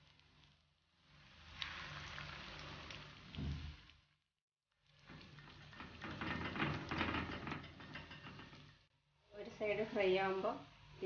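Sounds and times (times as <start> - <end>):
batter deep-frying in hot oil: 0.0 - 11.0.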